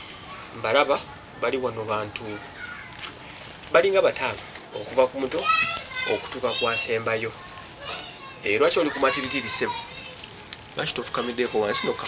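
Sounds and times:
children's voices: 0.0s - 1.4s, 2.0s - 3.6s, 4.7s - 12.0s
people talking: 3.8s - 12.0s.

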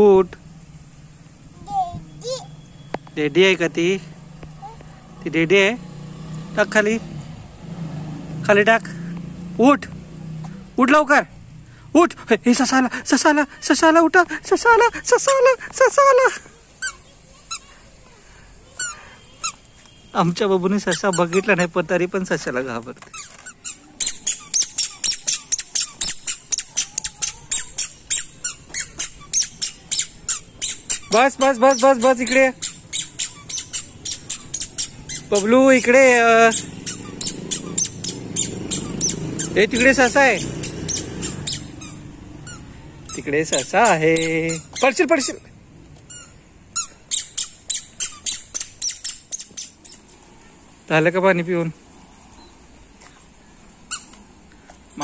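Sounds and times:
squeaky shoes squeaking: 1.7s - 3.5s, 16.7s - 17.8s, 18.7s - 50.9s, 51.9s - 55.0s.

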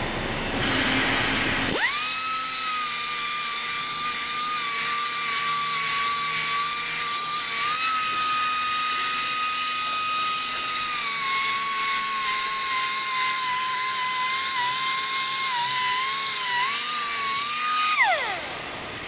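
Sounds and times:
air angle grinder whining: 0.6s - 19.0s.

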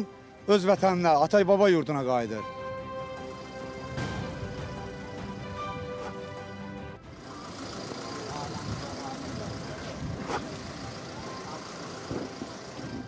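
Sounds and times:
soft background music: 0.0s - 9.8s
traffic noise: 2.4s - 13.0s
indistinct crowd voices: 4.0s - 13.0s.

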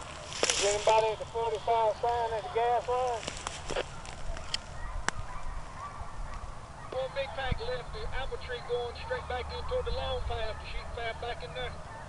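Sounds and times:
distant hounds baying: 0.0s - 12.0s.

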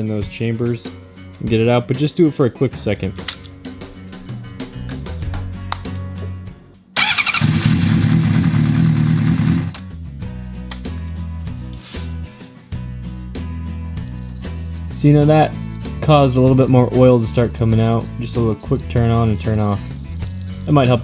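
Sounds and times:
motorcycle engine starting and running: 7.0s - 9.8s.

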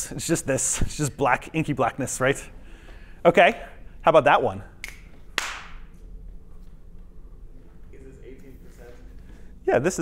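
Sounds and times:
low hum: 0.0s - 10.0s
sharp smack with echo: 4.9s - 5.8s.

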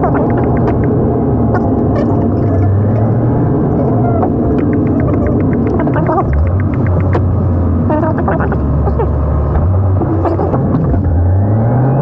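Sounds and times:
car engine and tyre rumble: 0.0s - 12.0s
light ticks: 4.6s - 7.2s.

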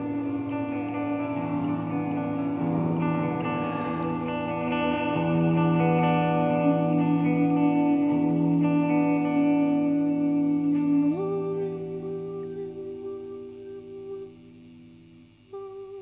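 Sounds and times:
electric guitar played fingerstyle: 0.0s - 16.0s.

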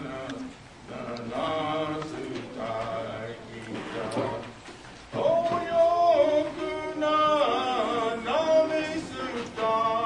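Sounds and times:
chant-like hymn singing: 0.0s - 10.0s.

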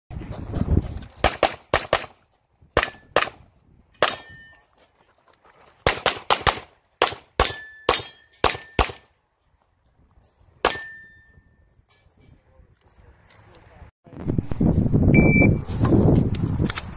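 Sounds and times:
pistol shots: 1.2s - 2.2s, 5.9s - 9.1s.

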